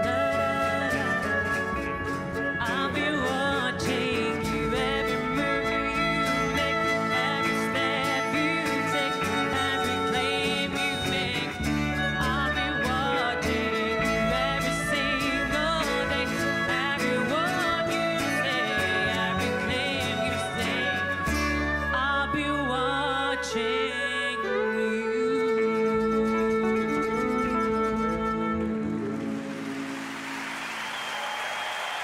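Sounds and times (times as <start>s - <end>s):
woman singing with vibrato: 0.0s - 29.0s
double bass: 0.0s - 29.8s
violin: 0.0s - 30.2s
acoustic guitars: 0.0s - 30.4s.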